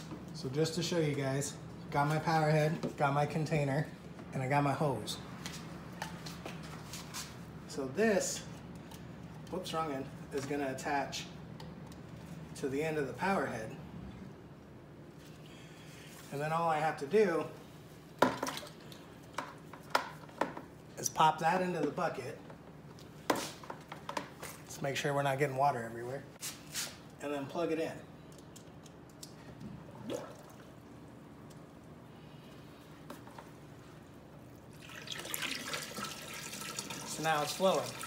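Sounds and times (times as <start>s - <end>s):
water pouring into tub: 34.7s - 38.0s.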